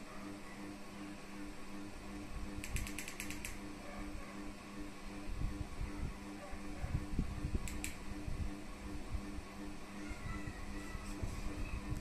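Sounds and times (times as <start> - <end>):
low steady hum: 0.0 - 12.0
remote control buttons clicking: 2.6 - 3.6, 7.6 - 8.0.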